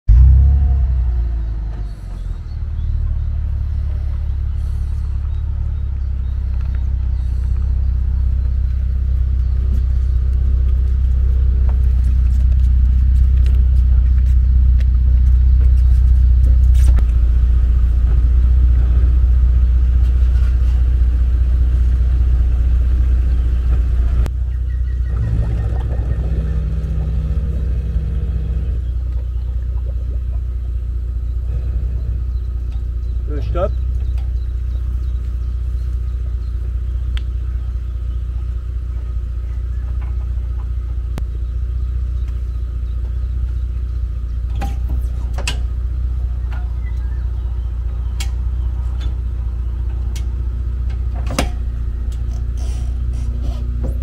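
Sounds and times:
car engine low rumble: 0:00.0 - 0:54.0.

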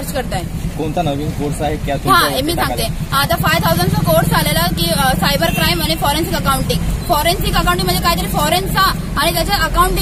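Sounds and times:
young woman speaking rapidly: 0:00.0 - 0:00.5, 0:02.1 - 0:10.0.

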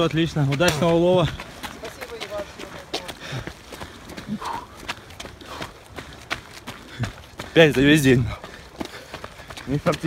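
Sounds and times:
footsteps on hard ground: 0:00.0 - 0:10.0.

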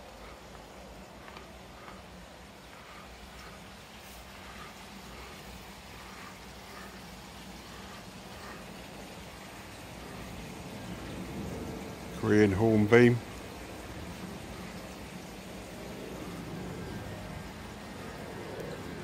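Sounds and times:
low steady hum: 0:00.0 - 0:19.0
waterfall trickling: 0:00.0 - 0:19.0.

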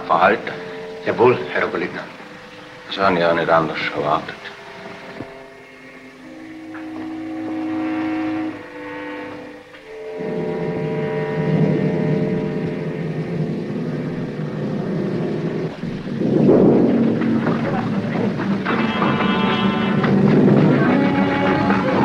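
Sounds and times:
orchestral chords: 0:00.0 - 0:22.0
low rumble: 0:10.1 - 0:22.0.

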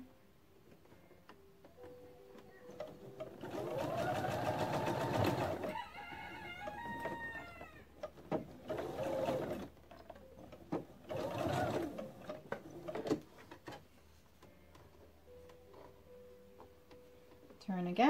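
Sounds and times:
sewing machine stitching: 0:02.7 - 0:05.8, 0:08.0 - 0:13.2.

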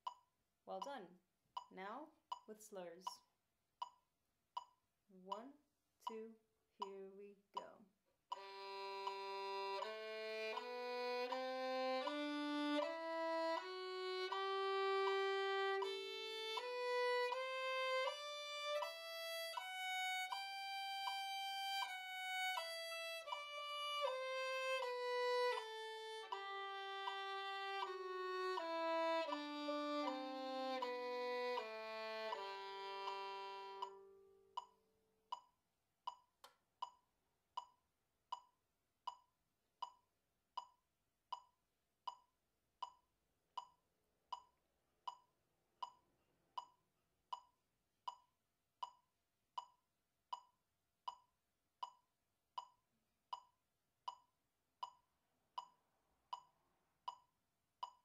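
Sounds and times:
metronome clicks: 0:00.0 - 0:01.0, 0:01.6 - 0:04.0, 0:04.6 - 0:37.0, 0:37.6 - 0:43.0, 0:43.6 - 0:46.0, 0:46.6 - 0:49.0, 0:49.6 - 0:52.0, 0:52.6 - 0:55.0, 0:55.6 - 0:58.0
violin playing a scale: 0:08.4 - 0:34.4.

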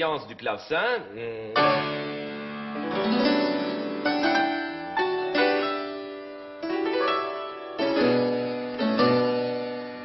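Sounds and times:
keyboard chords: 0:01.6 - 0:10.0.

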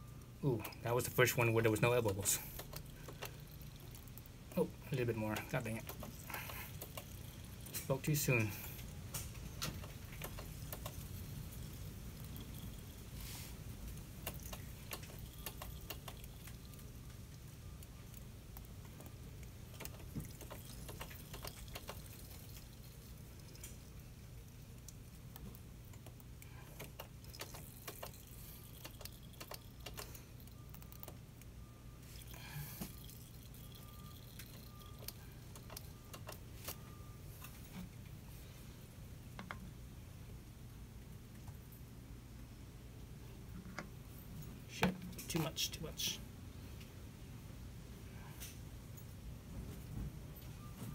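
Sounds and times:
steady low hum: 0:00.0 - 0:50.9.

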